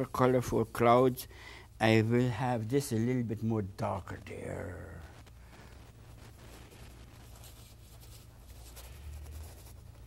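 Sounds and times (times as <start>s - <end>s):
low steady hum: 0.0s - 10.0s
paintbrush scrubbing on canvas: 6.1s - 10.0s.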